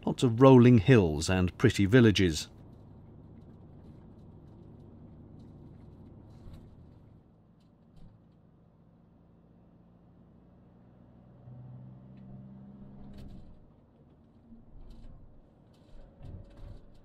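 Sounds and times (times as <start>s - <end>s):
van engine and road rumble: 0.0s - 17.0s.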